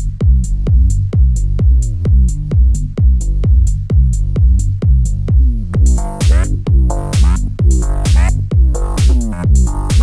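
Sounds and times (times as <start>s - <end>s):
low synth bass: 0.0s - 10.0s
offbeat hi-hats: 0.0s - 10.0s
techno kick drum: 0.0s - 10.0s.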